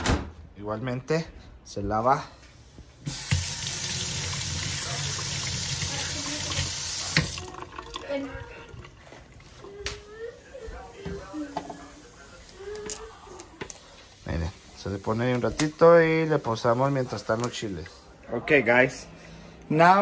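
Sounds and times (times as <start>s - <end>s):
faucet running into steel sink: 3.0s - 9.1s.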